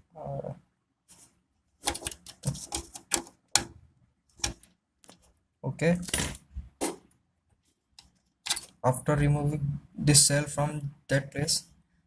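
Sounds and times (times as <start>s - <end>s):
metallic clicks and scrapes: 1.8s - 3.7s, 8.0s - 8.8s.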